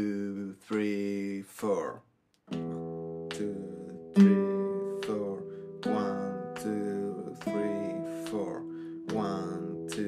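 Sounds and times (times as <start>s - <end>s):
classical guitar notes plucked: 2.5s - 10.0s.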